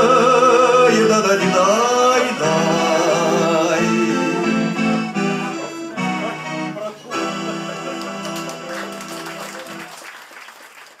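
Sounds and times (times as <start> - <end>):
audience applause: 7.9 - 11.0.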